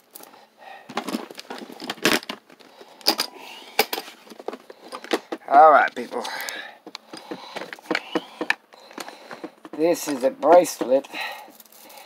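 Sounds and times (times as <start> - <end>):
small objects rattling in box: 0.9 - 5.5.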